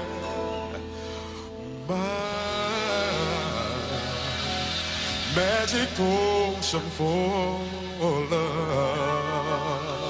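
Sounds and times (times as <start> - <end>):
band and orchestra playing soul ballad: 0.0 - 10.0
person singing: 0.0 - 10.0.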